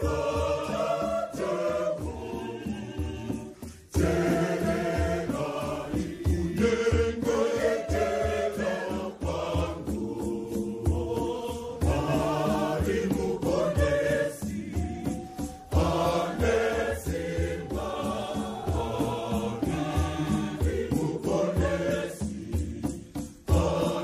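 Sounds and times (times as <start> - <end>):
crowd singing a hymn: 0.0 - 24.0
steady percussive beat: 0.0 - 24.0.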